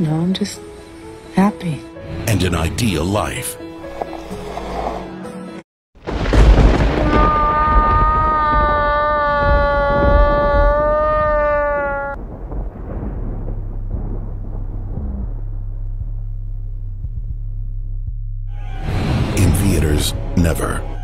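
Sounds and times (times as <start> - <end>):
loud boom hit: 6.0 - 8.2, 12.2 - 17.2
low rumbling drone: 12.2 - 21.0.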